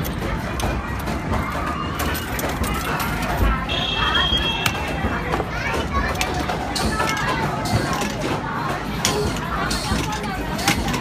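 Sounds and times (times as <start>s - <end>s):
arcade game noise: 0.0s - 11.0s
young children chattering: 0.0s - 11.0s.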